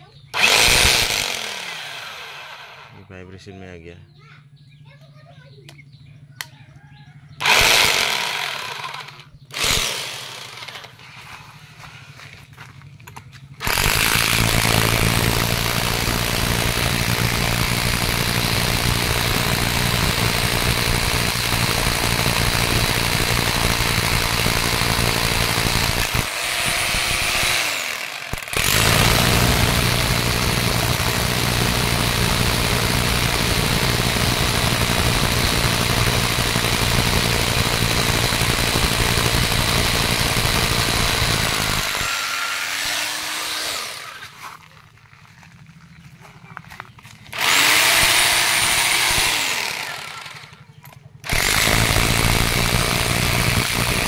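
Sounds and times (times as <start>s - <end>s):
rotary hammer drilling into stone: 0.4s - 3.0s, 7.4s - 11.1s, 13.6s - 44.4s, 47.3s - 50.6s, 51.2s - 54.0s.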